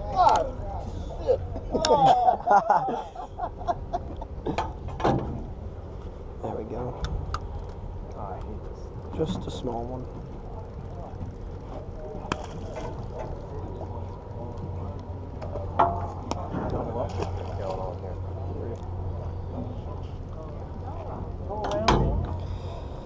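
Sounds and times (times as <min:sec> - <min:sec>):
boat engine humming: 0:00.0 - 0:23.0.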